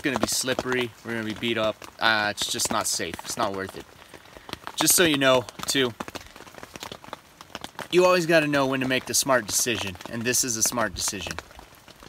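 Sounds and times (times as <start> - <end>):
rain on a tent: 0.0 - 12.0.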